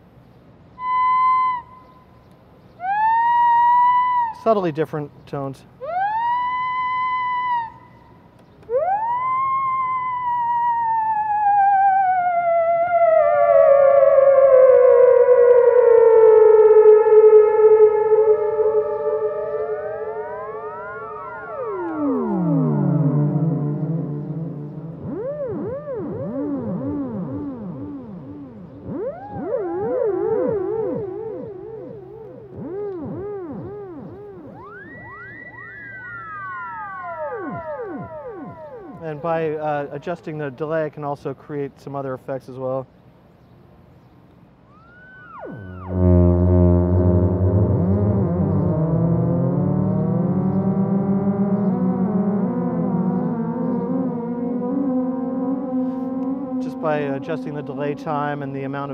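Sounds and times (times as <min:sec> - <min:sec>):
theremin with delay echoes: 0:00.7 - 0:04.9, 0:05.8 - 0:40.8, 0:44.6 - 0:58.9.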